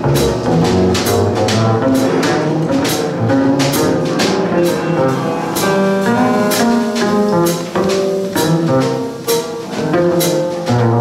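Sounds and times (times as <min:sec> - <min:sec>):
drum kit: 0:00.0 - 0:11.0
piano: 0:00.0 - 0:11.0
upright bass notes: 0:00.0 - 0:11.0
cymbal strokes: 0:02.0 - 0:09.6.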